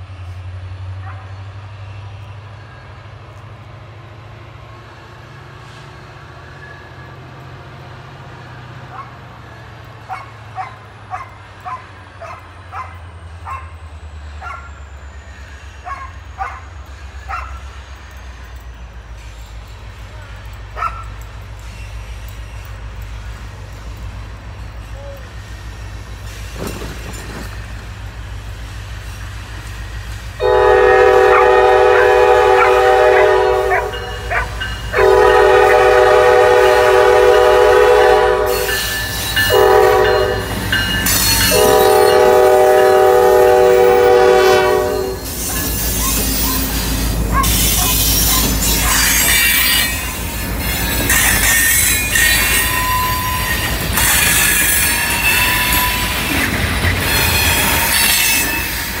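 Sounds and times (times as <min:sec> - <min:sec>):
train wheel noise: 0:00.0 - 0:59.0
wheel squeals: 0:12.8 - 0:28.0, 0:44.9 - 0:59.0
locomotive horn blowing: 0:30.4 - 0:45.4, 0:46.0 - 0:56.2.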